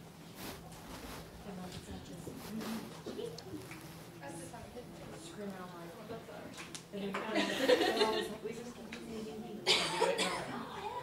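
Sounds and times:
faint murmured voices: 1.1 - 11.0
person coughing: 9.7 - 10.6.

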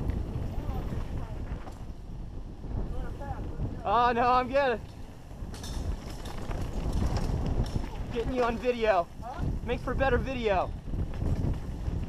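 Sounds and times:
bike rattling over rough ground: 0.0 - 12.0
bike tyres rumbling: 0.0 - 12.0
wind rushing on microphone: 0.0 - 12.0.

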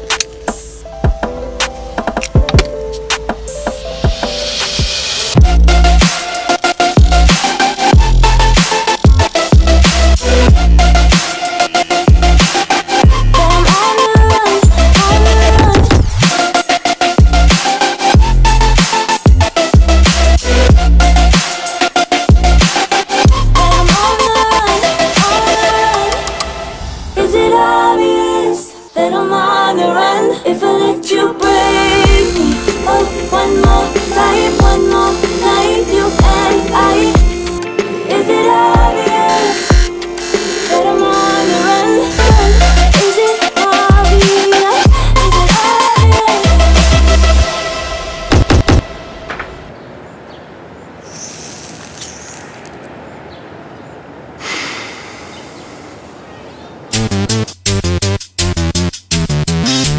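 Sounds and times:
steady outdoor hiss: 0.0 - 15.4, 30.2 - 44.9, 48.8 - 57.6
pop song with singing: 10.2 - 17.3, 23.3 - 47.8.

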